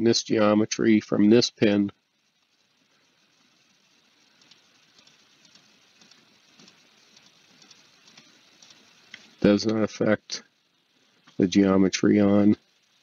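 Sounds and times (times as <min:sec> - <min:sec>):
faint room hiss: 0:00.0 - 0:13.0.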